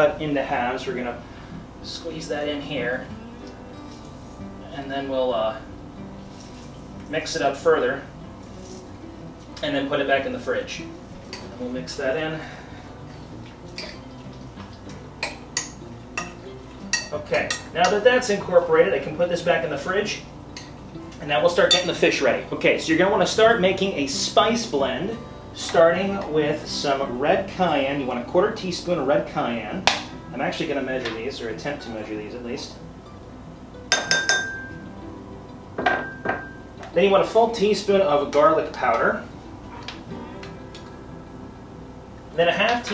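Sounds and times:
utensil clinking against glass: 33.9 - 34.8.

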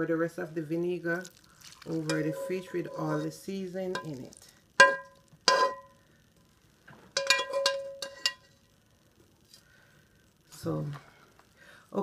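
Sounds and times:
metal spoon clinking on cookware: 1.9 - 3.4, 4.0 - 5.9, 7.2 - 8.5.

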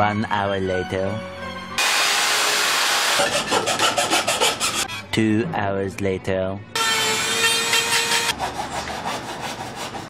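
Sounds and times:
electric drill boring into wood: 1.8 - 3.5
hand tool rasping: 3.1 - 5.0, 7.0 - 10.0.

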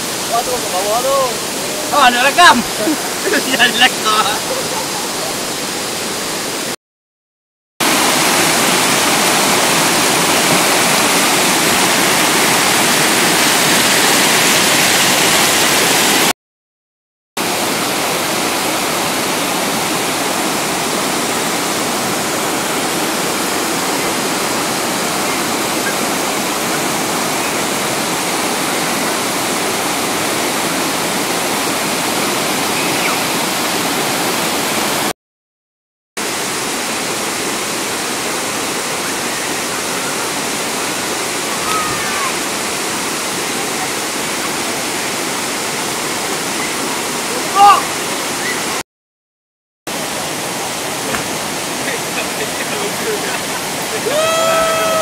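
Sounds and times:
river and waterfall rushing: 0.0 - 6.8, 7.8 - 16.3, 17.4 - 35.1, 36.2 - 48.8, 49.9 - 55.0.

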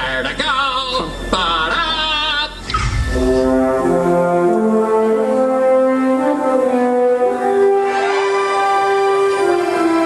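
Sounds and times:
orchestral music with brass melody: 2.8 - 10.0.

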